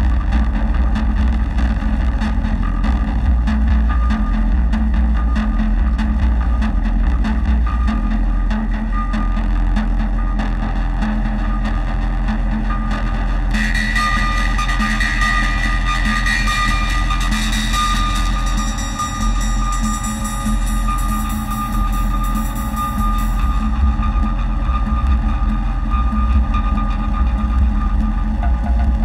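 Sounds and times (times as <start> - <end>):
low bass drone: 0.0 - 29.0
pulsing mid tone: 12.2 - 29.0
high whining tone: 13.5 - 28.8.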